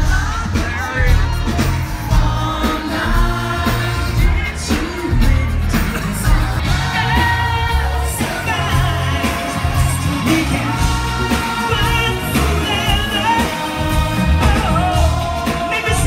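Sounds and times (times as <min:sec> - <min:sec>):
lead singer singing: 0:00.0 - 0:16.0
live pop band playing: 0:00.0 - 0:16.0.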